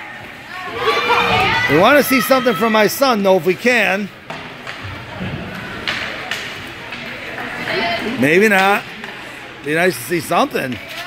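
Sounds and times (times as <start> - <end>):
skates and arena noise: 0.0 - 11.0
hockey sticks knocking puck: 4.2 - 4.9, 5.8 - 7.4.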